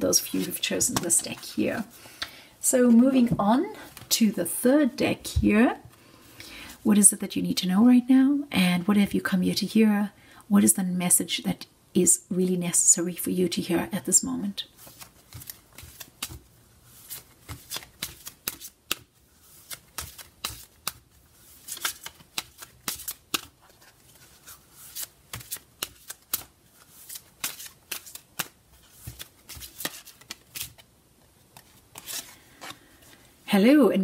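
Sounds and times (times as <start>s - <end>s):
cards being shuffled: 14.8s - 33.2s.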